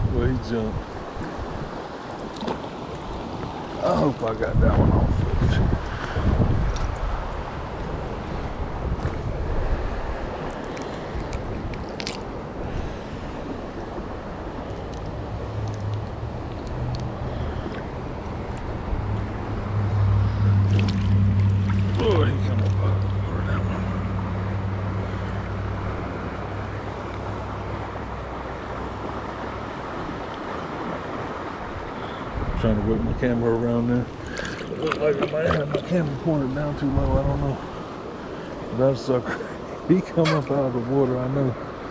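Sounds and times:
stream water rushing: 0.0 - 41.9
low steady drone: 12.6 - 29.9.

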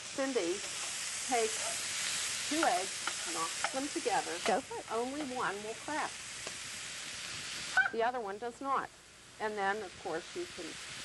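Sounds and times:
sausage sizzling in a frying pan: 0.0 - 11.0.

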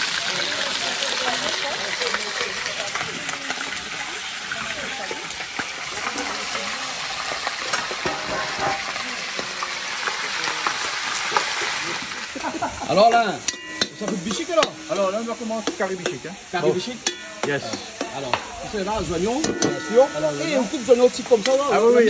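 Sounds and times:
chicken sizzling in pot: 0.0 - 22.0
tongs clinking on metal pot: 13.1 - 18.0, 19.4 - 21.8.

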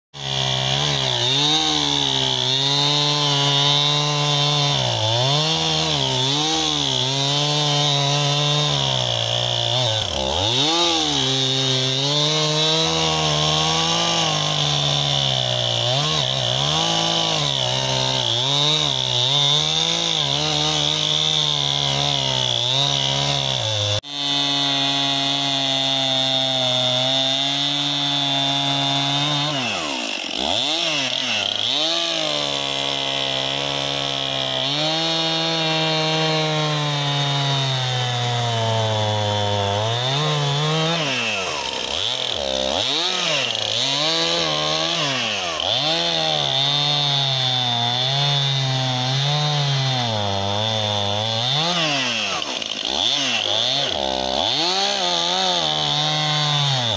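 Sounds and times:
chainsaw cutting log: 0.1 - 56.9.

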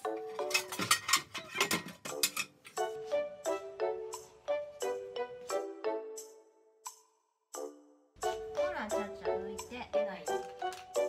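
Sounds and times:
bright pitched background music: 0.0 - 11.0.

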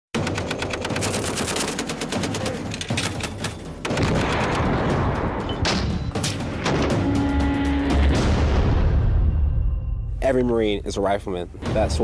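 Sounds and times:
machine gun automatic bursts: 0.2 - 4.8.

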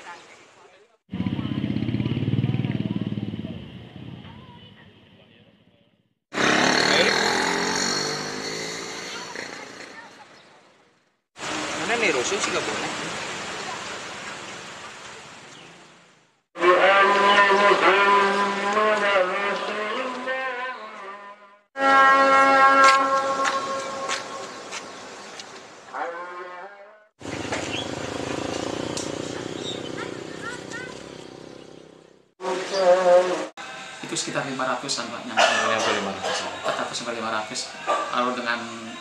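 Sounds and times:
vehicle engine passing by: 1.1 - 4.9, 6.4 - 10.3, 27.2 - 32.6.

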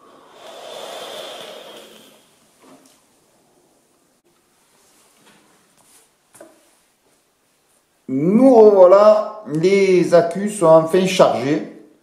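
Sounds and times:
person breathing out: 0.0 - 2.3.

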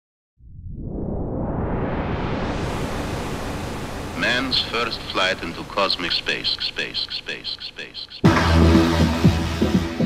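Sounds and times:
synthesized noise sweep: 0.4 - 9.8.

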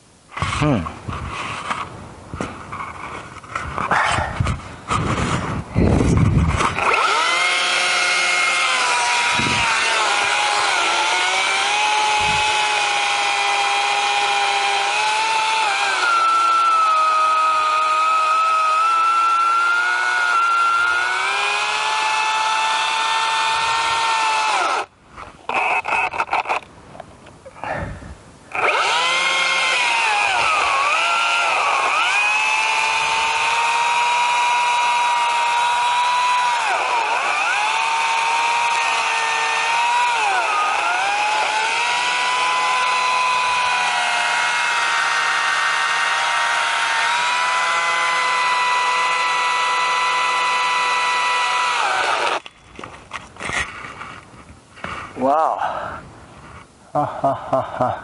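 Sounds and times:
chainsaw cutting wood: 6.0 - 26.7, 28.5 - 53.8.

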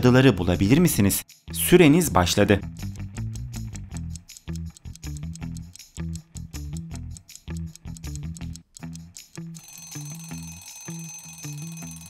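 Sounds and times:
light plucked background music: 0.0 - 12.0
alarm clock ringing: 9.2 - 12.0.

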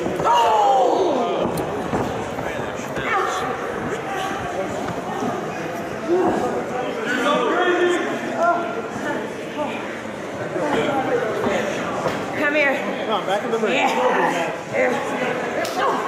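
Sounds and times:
people shouting: 0.1 - 1.5.

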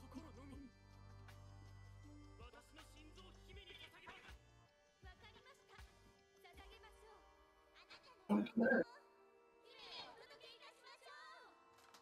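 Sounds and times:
quiet background music: 0.0 - 12.0
character dialogue: 8.3 - 8.8
short vocal cries: 8.3 - 8.8.

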